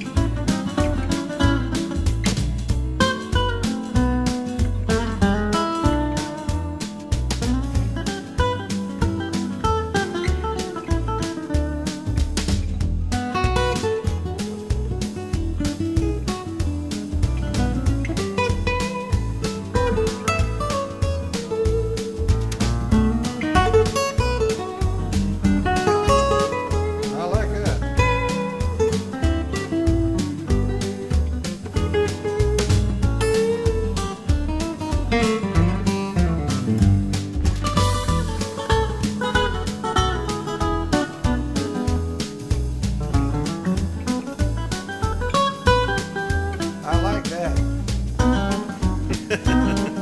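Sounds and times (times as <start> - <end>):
fingerpicked jazz guitar: 0.0 - 50.0.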